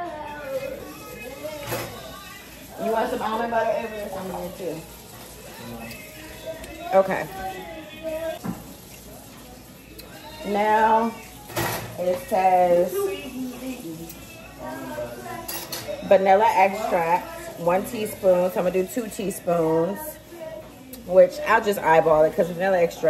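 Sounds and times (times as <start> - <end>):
dishes and utensils clattering: 0.5 - 7.6, 8.4 - 19.9
people talking: 2.7 - 4.9, 10.4 - 11.2, 12.0 - 20.3, 20.9 - 23.0.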